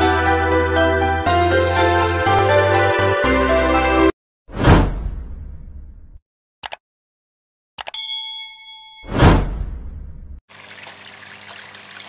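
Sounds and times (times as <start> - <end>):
bell ding: 7.9 - 9.2.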